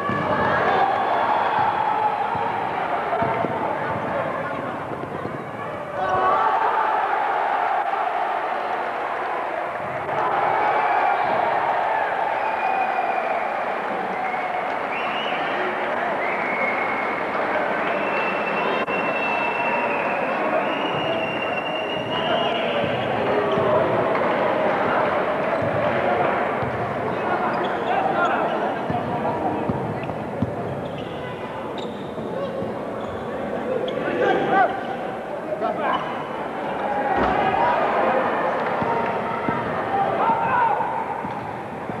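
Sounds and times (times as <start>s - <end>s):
crowd din of voices: 0.0s - 42.0s.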